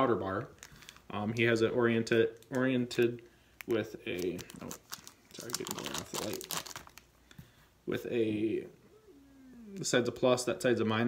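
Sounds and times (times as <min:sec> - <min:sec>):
plastic bag crinkling: 0:00.5 - 0:01.6, 0:03.6 - 0:07.1.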